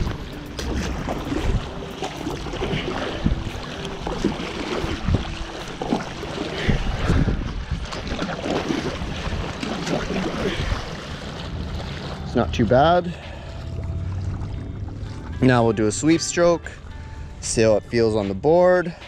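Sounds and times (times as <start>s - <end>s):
wind buffeting microphone: 0.0s - 15.4s
paddle strokes splashing: 0.0s - 17.3s
water rushing along hull: 0.0s - 19.0s.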